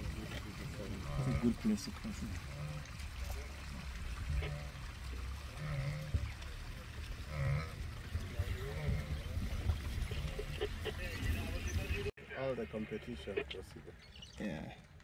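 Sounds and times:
wildebeest grunting and lowing: 0.2 - 12.0.

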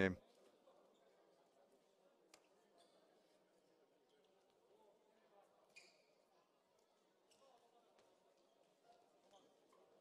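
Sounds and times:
faint sounds from court: 0.0 - 10.0.

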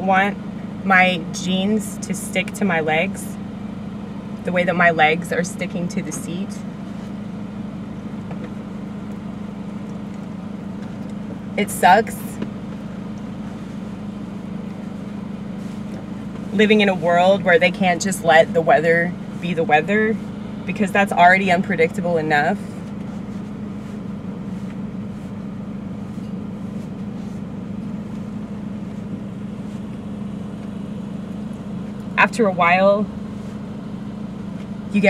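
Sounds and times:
car running heard from cabin: 0.0 - 35.0.

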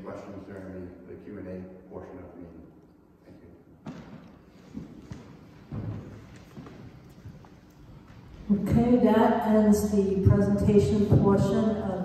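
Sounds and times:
low room noise: 0.0 - 12.0.

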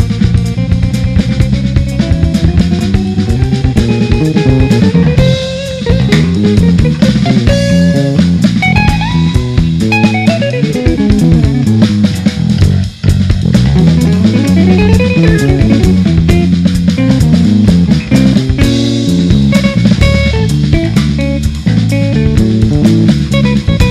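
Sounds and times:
drum kit and cymbals: 0.0 - 23.9
electric bass line: 0.0 - 23.9
electric guitar: 0.0 - 23.9.

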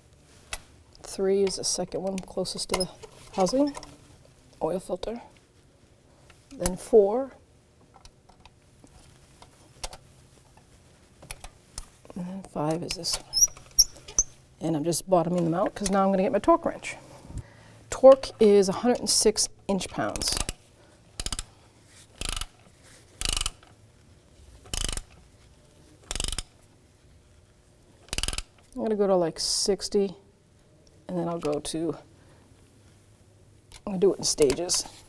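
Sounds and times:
faint steady hum: 0.0 - 35.0
ratchet wrench clicking: 21.2 - 21.5, 22.2 - 22.6, 23.2 - 23.7, 24.7 - 25.2, 26.1 - 26.5, 28.1 - 28.6.

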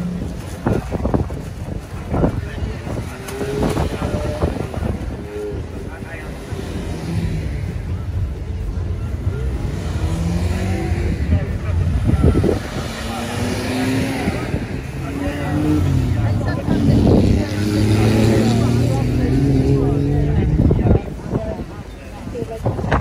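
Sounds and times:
car engines revving and accelerating: 0.0 - 23.0.

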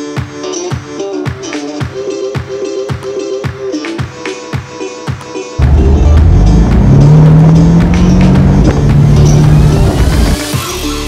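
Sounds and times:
background music: 0.0 - 11.0
car engine running: 5.6 - 10.4.

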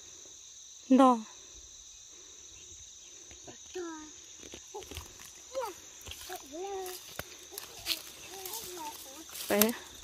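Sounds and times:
insects droning: 0.0 - 10.0
brush crackling: 4.1 - 10.0.

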